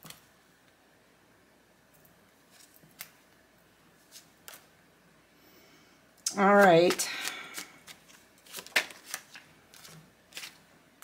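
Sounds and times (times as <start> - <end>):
cards being handled clicking: 6.5 - 10.6.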